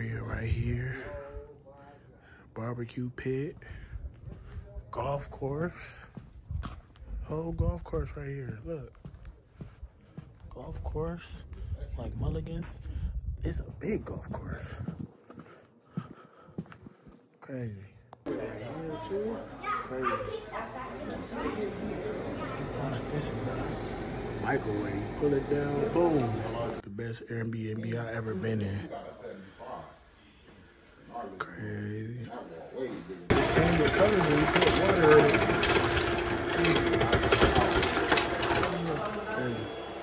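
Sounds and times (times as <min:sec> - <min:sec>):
children and people talking: 0:18.3 - 0:26.8
refrigerator dispenser buzzing: 0:20.2 - 0:26.8, 0:33.3 - 0:40.0.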